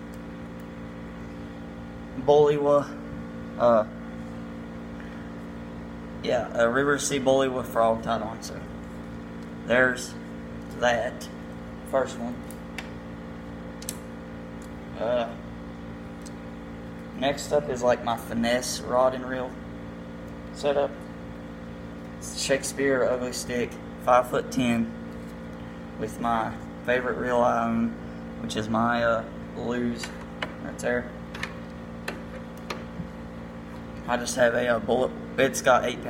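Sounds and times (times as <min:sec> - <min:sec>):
humidifier humming: 0:00.0 - 0:36.0.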